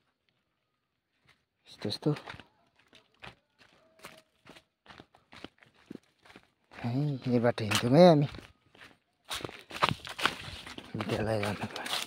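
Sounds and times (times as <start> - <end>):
footsteps on dirt trail: 0.0 - 12.0
person speaking word: 10.9 - 12.0.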